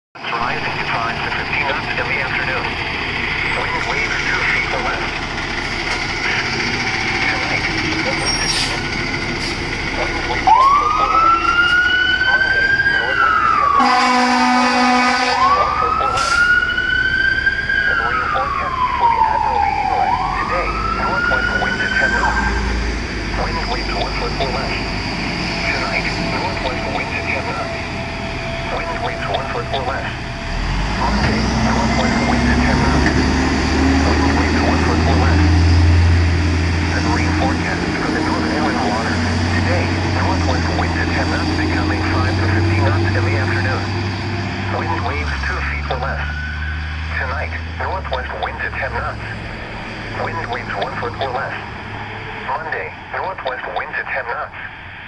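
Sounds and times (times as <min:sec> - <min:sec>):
fire engine siren wailing: 0:00.2 - 0:55.0
truck engine rumble: 0:00.2 - 0:55.0
air horn blast: 0:13.7 - 0:16.4.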